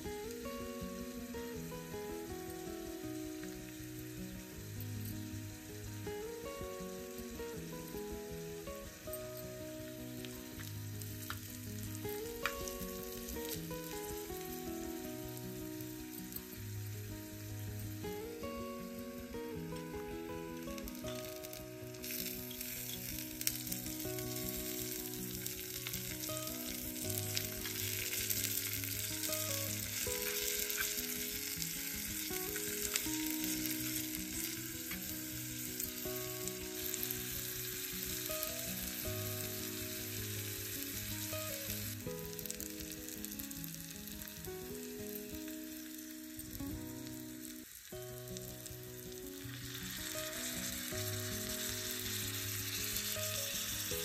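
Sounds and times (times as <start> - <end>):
vegetables sizzling in oil: 0.0 - 54.0.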